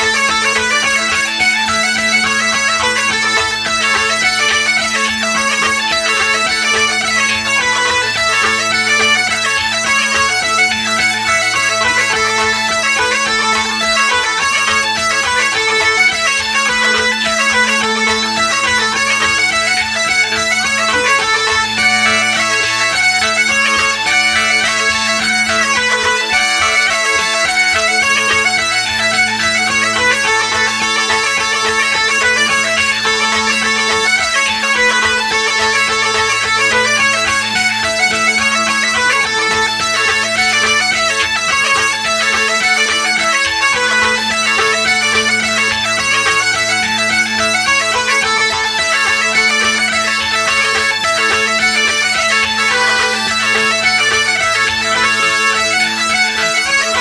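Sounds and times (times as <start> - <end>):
bagpipes playing a lively tune: 0.0 - 57.0.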